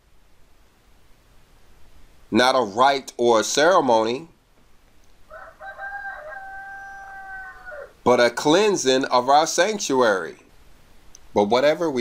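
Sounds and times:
rooster crowing: 5.2s - 8.0s.

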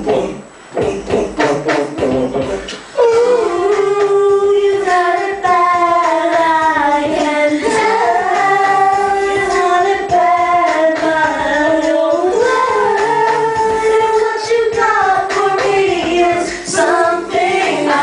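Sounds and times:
man and woman singing karaoke: 0.0s - 18.0s.

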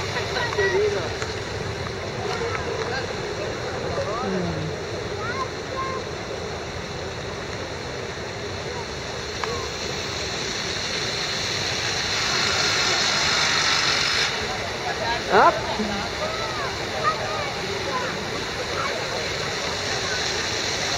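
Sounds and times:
faint distant voices: 0.0s - 20.9s
steady rushing noise: 0.0s - 20.9s.

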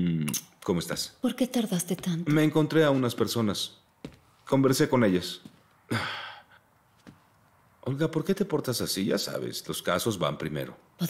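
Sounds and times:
person sighing: 5.9s - 6.6s.

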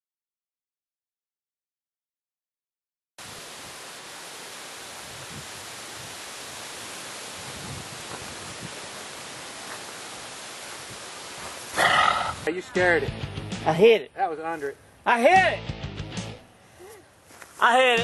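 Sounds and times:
outdoor background hiss: 3.2s - 18.0s.

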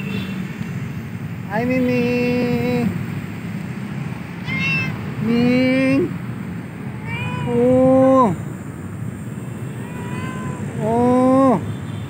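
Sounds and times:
cat meowing: 4.4s - 5.1s, 7.0s - 8.4s, 9.6s - 10.9s.

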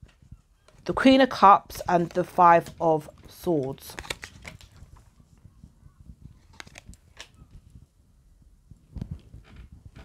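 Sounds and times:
cards being shuffled: 3.8s - 5.1s, 6.4s - 7.4s.

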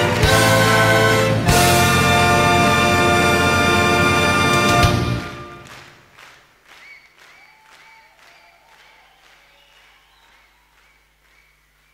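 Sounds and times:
audience applause: 0.0s - 0.9s, 5.4s - 11.9s.

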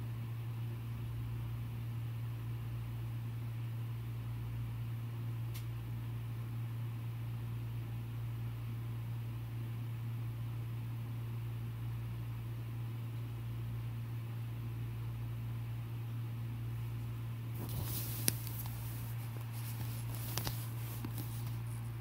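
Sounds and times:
low electrical hum: 0.0s - 22.0s
brief rustle: 17.6s - 21.9s.

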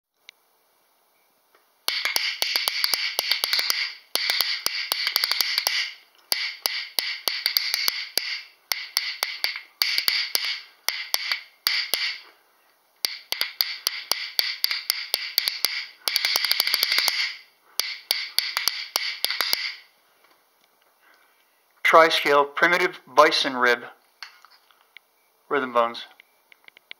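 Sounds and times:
rhythm bones clacking: 1.9s - 12.3s, 13.0s - 19.9s.

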